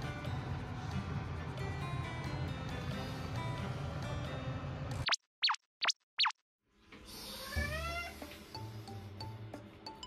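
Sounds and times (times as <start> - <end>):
light background music: 0.0 - 5.0, 7.0 - 10.0.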